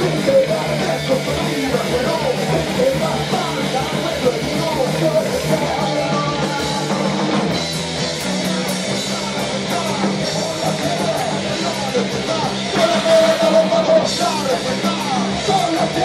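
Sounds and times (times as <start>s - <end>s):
punk rock band playing: 0.0s - 16.0s.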